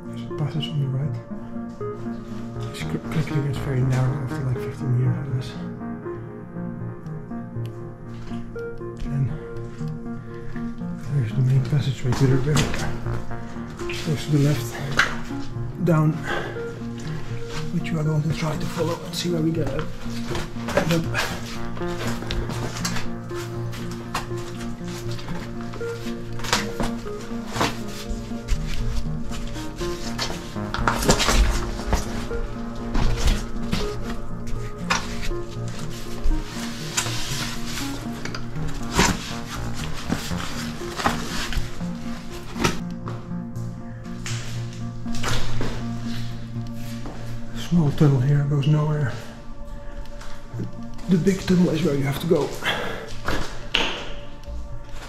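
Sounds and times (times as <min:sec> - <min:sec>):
ambient droning music: 0:00.0 - 0:55.0.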